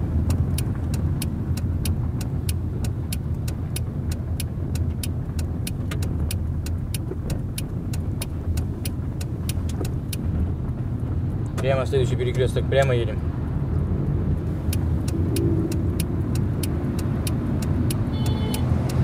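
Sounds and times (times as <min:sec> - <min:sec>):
car engine and tyre rumble: 0:00.0 - 0:19.0
turn signal ticking: 0:00.0 - 0:19.0.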